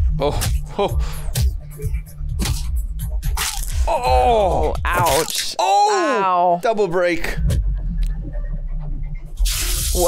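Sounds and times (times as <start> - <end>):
low rumbling film score: 0.0 - 5.8, 6.4 - 9.6.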